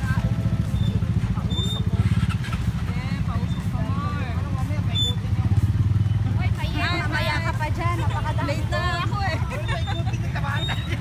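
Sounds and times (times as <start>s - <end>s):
diesel engine rumbling: 0.0s - 11.0s
faint voices: 0.0s - 11.0s
motorcycles idling: 0.0s - 11.0s.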